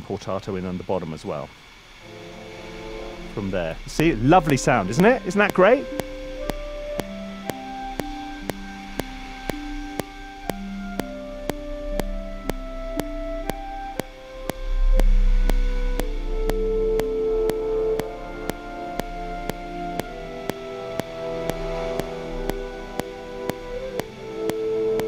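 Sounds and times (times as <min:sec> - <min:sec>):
orchestral music with trombone: 0:02.1 - 0:07.9, 0:15.9 - 0:25.0
metronome clicking: 0:04.0 - 0:25.0.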